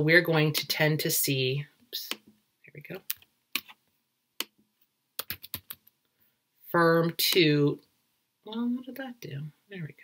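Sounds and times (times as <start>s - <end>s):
computer mouse clicks: 5.2s - 5.9s.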